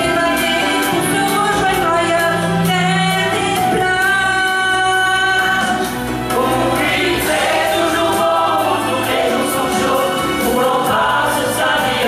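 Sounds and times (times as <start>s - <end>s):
backing music: 0.0s - 12.0s
mixed choir singing: 0.1s - 12.0s.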